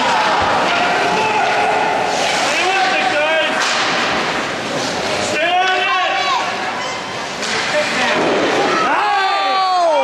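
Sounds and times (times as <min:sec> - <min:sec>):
ice rink din: 0:00.0 - 0:10.0
spectators shouting: 0:08.6 - 0:10.0.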